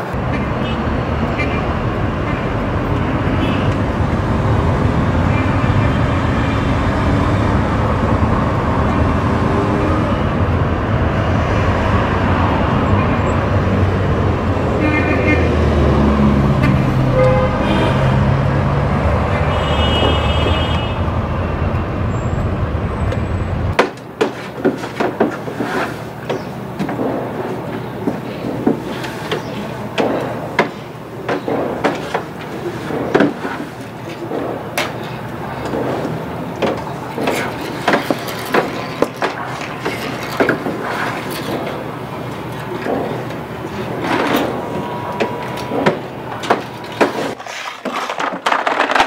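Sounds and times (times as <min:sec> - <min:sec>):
car horns: 0:00.3 - 0:03.9, 0:14.7 - 0:22.4.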